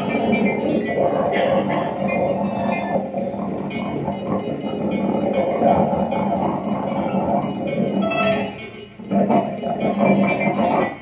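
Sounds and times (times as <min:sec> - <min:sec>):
experimental synthesizer music: 0:00.0 - 0:11.0.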